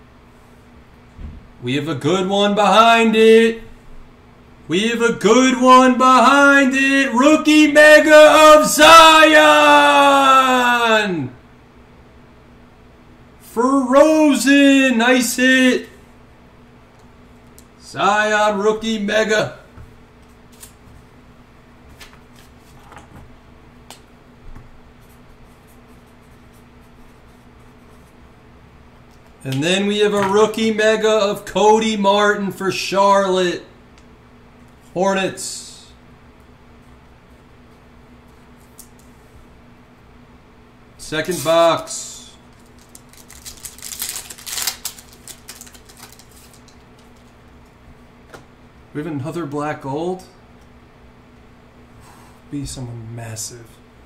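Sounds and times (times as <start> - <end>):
low steady hum: 0.0 - 54.0
cards rustling and clicking: 42.5 - 47.6.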